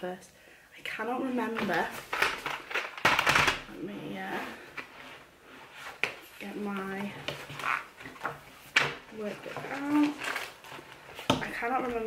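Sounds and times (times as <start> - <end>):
paper pages rustling: 4.8 - 12.0.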